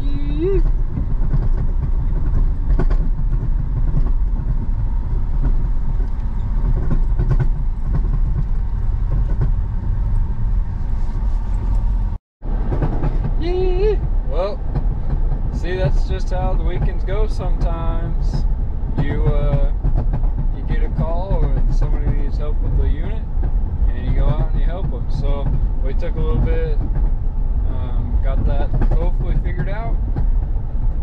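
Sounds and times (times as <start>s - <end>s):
road and engine rumble in car: 0.0s - 31.0s.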